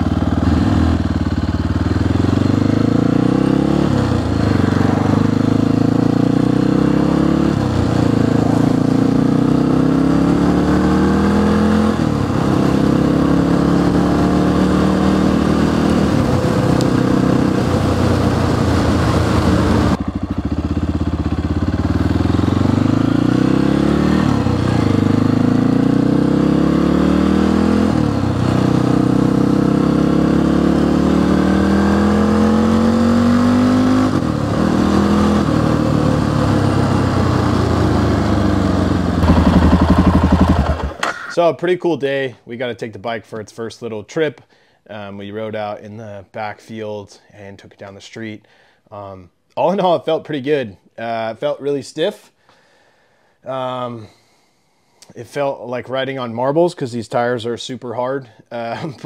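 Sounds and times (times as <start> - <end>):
motorcycle engine shifting gears: 0.0 - 41.4.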